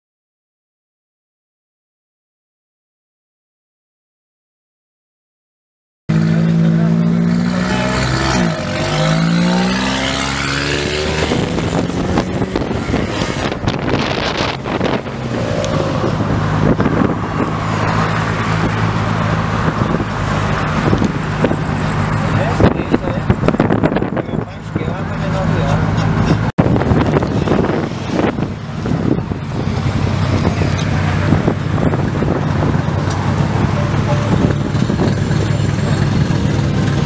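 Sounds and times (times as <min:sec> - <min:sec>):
car engines running: 0:06.1 - 0:37.0.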